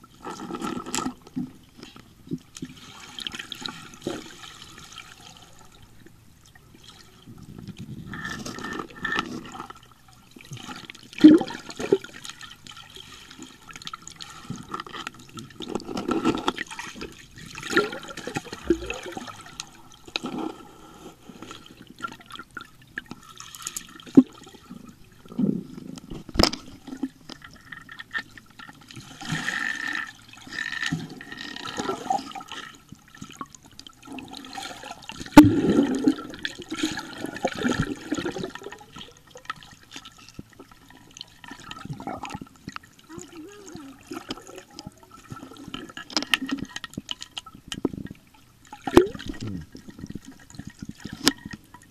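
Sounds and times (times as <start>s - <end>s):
muffled underwater sloshing: 0.0s - 51.9s.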